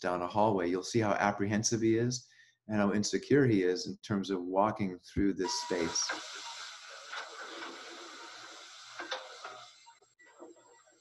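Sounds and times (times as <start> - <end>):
steady hiss: 5.4 - 10.0.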